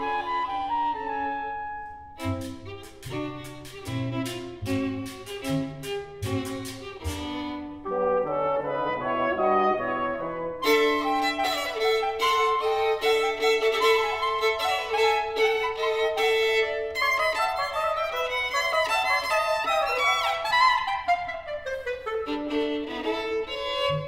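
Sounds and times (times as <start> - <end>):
chamber ensemble with violin: 0.0 - 24.0.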